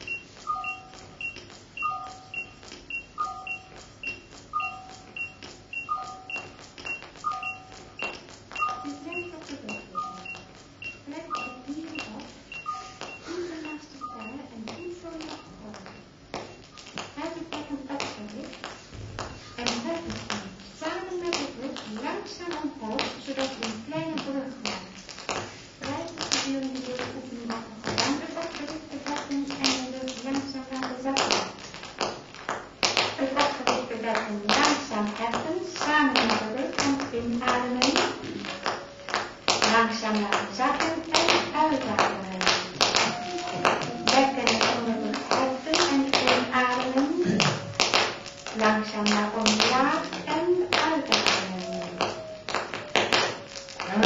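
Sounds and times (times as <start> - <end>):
sharp clicks and taps: 0.0 - 33.6
electronic voice-like gliding tones: 37.5 - 39.2, 40.9 - 49.0.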